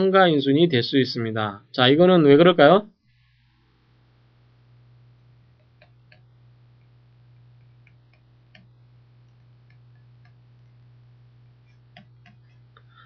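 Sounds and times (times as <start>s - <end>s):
low hum: 2.9s - 13.0s
faint clicks: 5.5s - 10.8s.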